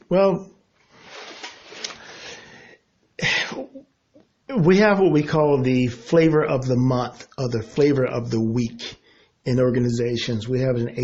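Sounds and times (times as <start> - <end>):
man drawing a breath: 1.0 - 2.9, 9.0 - 9.4.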